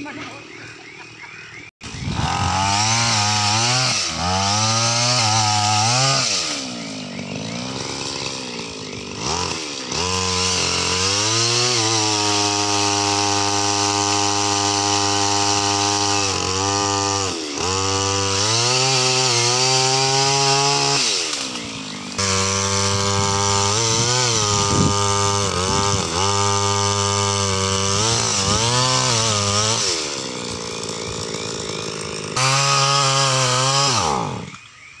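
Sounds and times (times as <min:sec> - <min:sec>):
pole saw engine revving: 0:01.8 - 0:34.6.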